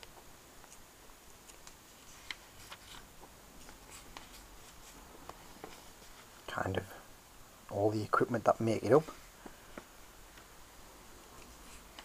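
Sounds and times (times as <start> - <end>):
paper pages turning: 0.6 - 6.4.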